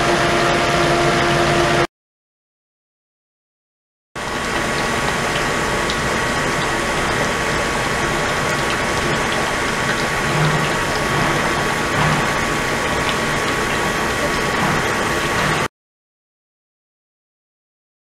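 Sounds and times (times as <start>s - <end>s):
churning water rushing: 4.2s - 15.7s.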